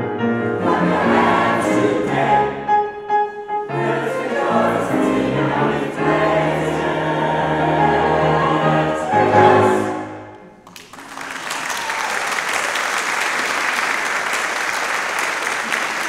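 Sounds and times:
mixed choir singing: 0.4 - 10.5.

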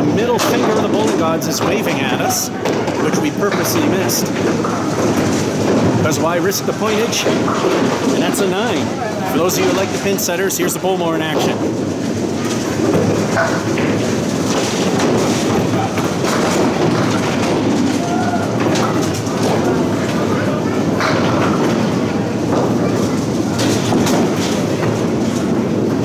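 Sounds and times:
pinsetter machine clattering: 0.0 - 26.0.

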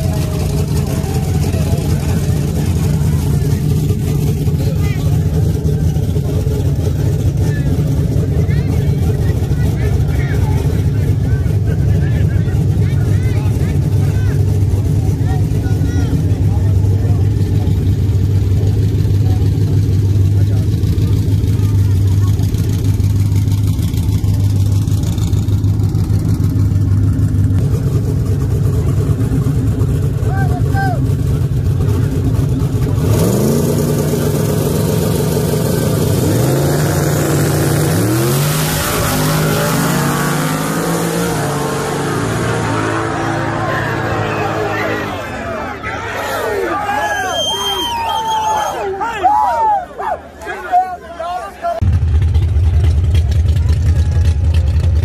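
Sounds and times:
crowd voices: 0.0 - 55.0
race engines revving: 0.0 - 55.0.

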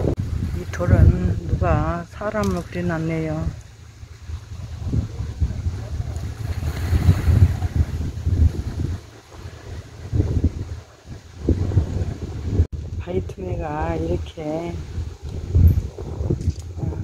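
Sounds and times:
wind gusting over microphone: 0.0 - 17.0.

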